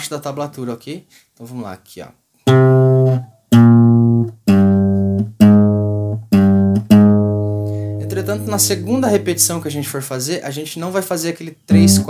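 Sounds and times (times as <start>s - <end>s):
classical guitar bass notes: 2.5s - 9.9s, 11.7s - 12.0s.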